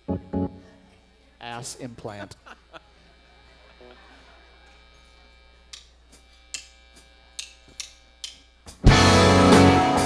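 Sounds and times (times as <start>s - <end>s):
drumstick count-in ticks: 7.4s - 8.4s.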